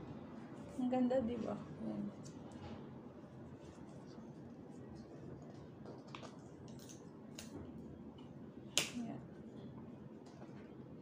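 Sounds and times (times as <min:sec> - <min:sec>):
sharp snap: 0:08.8 - 0:09.0.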